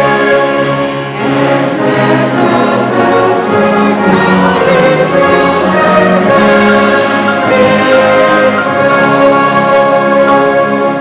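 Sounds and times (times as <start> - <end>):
congregation singing a hymn: 0.0 - 11.0
instrumental accompaniment: 0.0 - 11.0.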